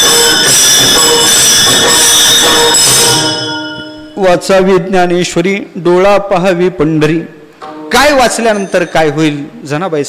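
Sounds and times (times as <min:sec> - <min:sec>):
brass hand cymbals clashing: 0:00.0 - 0:04.2.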